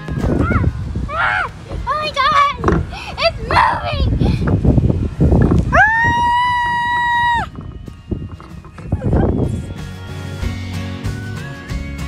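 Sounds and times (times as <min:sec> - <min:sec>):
children shouting and shrieking: 0:00.2 - 0:04.5, 0:05.6 - 0:07.6
long high scream: 0:05.7 - 0:07.5.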